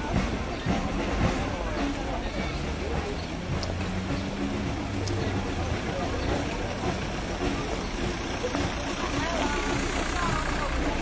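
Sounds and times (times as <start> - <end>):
crowd voices calling out: 0.0 - 11.0.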